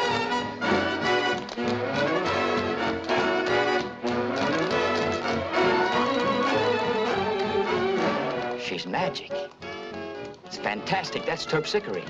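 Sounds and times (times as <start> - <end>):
orchestral dance music: 0.0 - 12.0.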